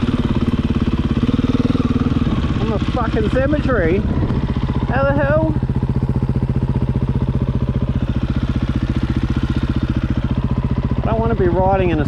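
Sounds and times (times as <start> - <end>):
dirt bike engine idling: 0.0 - 12.0.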